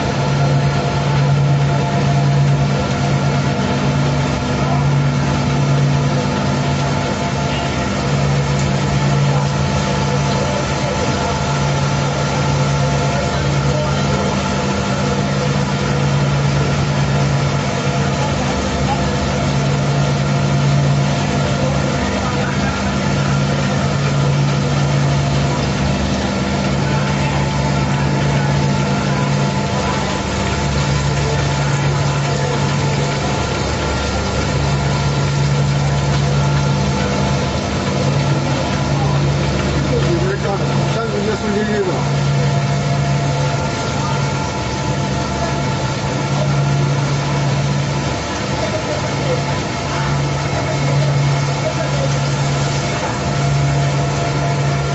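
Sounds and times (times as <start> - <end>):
machine electric drive hum: 0.0 - 54.9.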